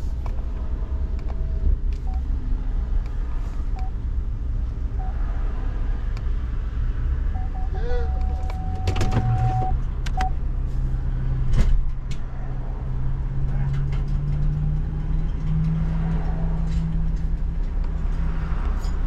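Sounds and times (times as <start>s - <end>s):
electronic warning tone: 7.3s - 9.8s
short beep: 7.4s - 10.3s.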